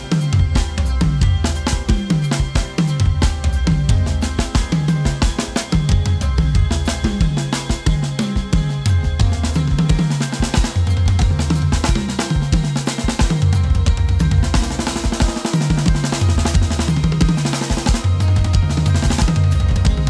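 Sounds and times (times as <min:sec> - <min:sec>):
backing music: 0:00.0 - 0:20.0
drum kit played hard: 0:00.0 - 0:20.0.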